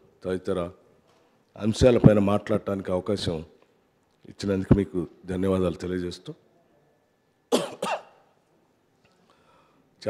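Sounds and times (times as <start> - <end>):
man coughing: 7.5 - 8.2.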